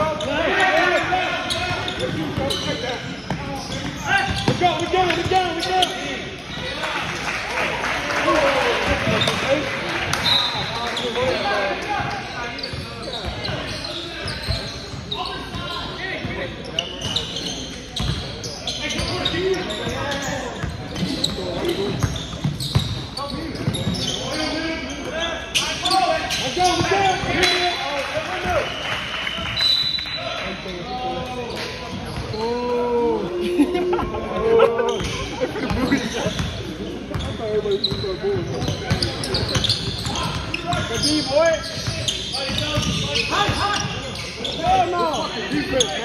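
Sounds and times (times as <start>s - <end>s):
sneaker squeaks: 0.0s - 6.8s, 8.9s - 33.0s, 34.8s - 46.0s.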